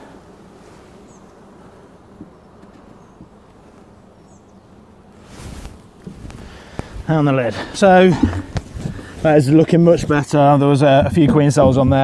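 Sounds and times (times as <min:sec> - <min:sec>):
honey bees buzzing: 0:00.0 - 0:12.0
wooden board scraping on hive: 0:00.0 - 0:12.0.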